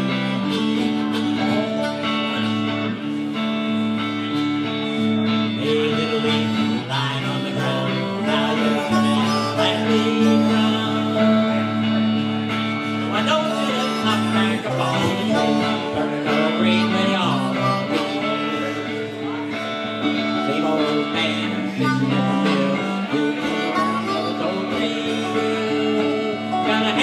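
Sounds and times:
dobro picking: 0.0 - 27.0
electric guitar: 0.0 - 27.0
harmonica: 0.0 - 27.0.

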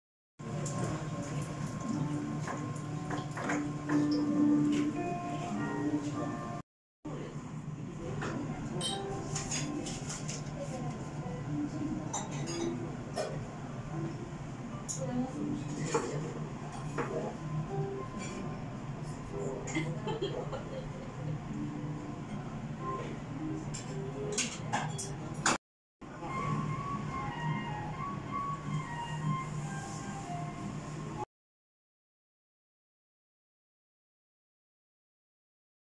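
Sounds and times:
faint background music: 0.5 - 20.3, 21.1 - 31.2
dishes and glassware clinking: 8.8 - 10.3, 12.0 - 13.5, 23.6 - 25.6.

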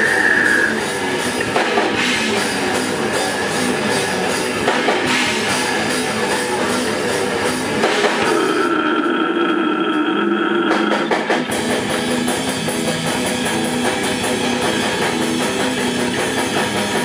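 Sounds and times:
held wavering guitar note: 0.0 - 1.2, 7.7 - 12.1
death metal band playing live: 0.0 - 17.0.

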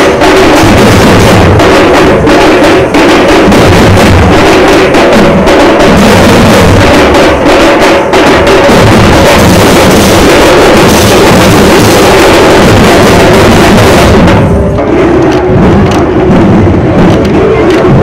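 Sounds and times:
barrel drums beaten with sticks: 0.0 - 18.0.

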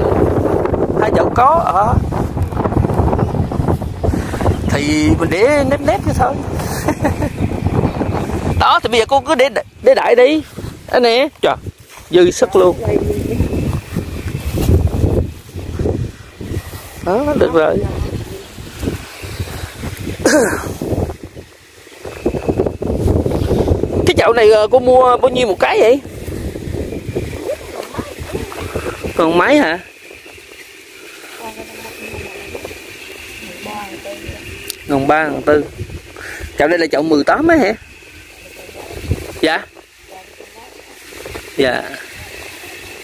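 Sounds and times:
high-pitched whine: 0.0 - 43.0
wind buffeting microphone: 0.0 - 43.0.

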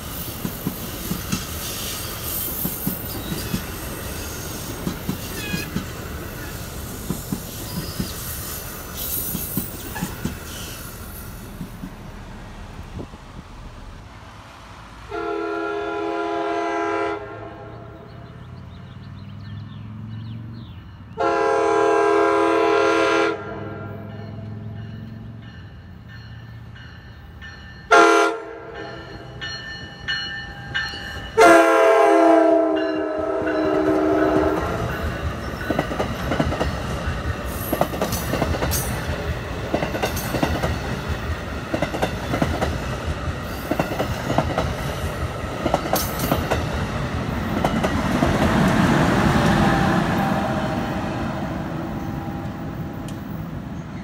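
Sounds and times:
train wheels rumbling on rails: 0.0 - 16.1, 22.8 - 54.0
train horn blasts: 15.1 - 18.2, 21.1 - 24.6, 27.9 - 29.3, 31.3 - 34.9, 49.2 - 52.9.

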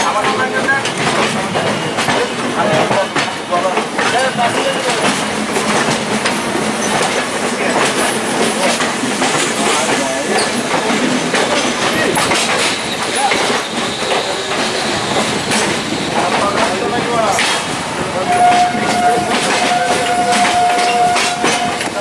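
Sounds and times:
train wheels rumbling on track: 0.0 - 22.0.

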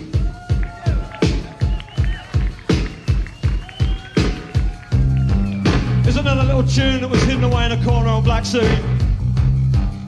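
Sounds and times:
rock drum kit beat: 0.0 - 10.0.

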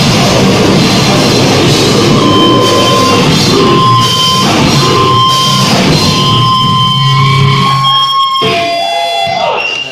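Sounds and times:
band playing loud distorted music: 0.0 - 9.9
ringing guitar tones bending pitch: 1.5 - 9.6
high ringing tone: 1.9 - 9.4.

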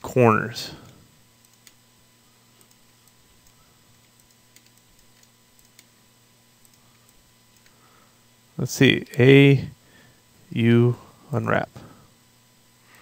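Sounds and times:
faint steady hum: 0.0 - 13.0
mouse and keyboard clicks: 4.2 - 5.9.

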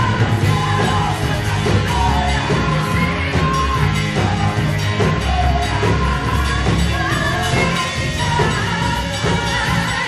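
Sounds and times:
amplified musical accompaniment: 0.0 - 10.0
women singing worship song: 0.0 - 10.0.

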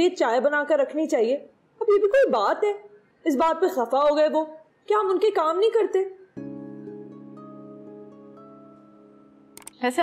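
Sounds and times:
soft sustained chords: 6.4 - 10.0.

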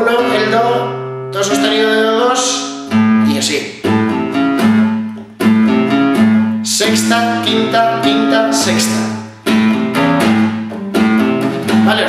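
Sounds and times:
acoustic guitar riff: 0.0 - 12.0.

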